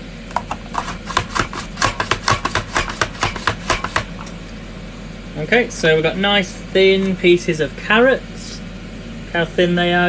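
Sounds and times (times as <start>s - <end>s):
mandolin slicer chopping carrot: 0.3s - 4.2s.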